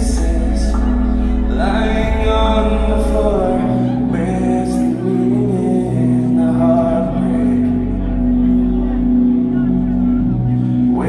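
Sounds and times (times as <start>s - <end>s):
bass guitar: 0.0s - 11.0s
held guitar chords: 0.0s - 11.0s.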